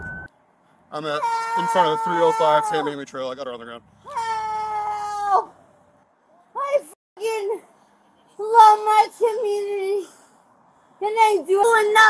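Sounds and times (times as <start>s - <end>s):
woman screaming: 1.2s - 3.0s, 4.1s - 5.5s.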